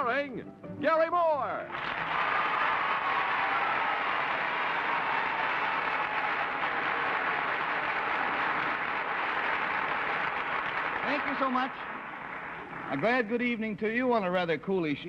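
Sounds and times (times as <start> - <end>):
audience applauding: 1.7 - 13.6.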